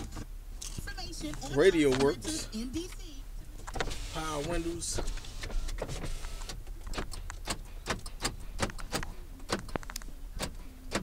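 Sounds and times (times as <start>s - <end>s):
car engine idling: 0.0s - 11.0s
sharp clicks and knocks: 5.4s - 11.0s.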